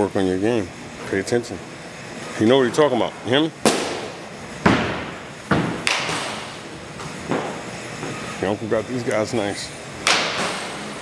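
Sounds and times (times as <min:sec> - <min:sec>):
bat striking ball: 0:03.6 - 0:06.5, 0:10.0 - 0:10.7.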